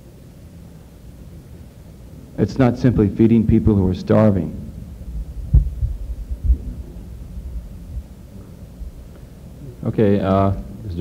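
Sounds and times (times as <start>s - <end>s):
microphone handling thumps: 5.1s - 8.2s.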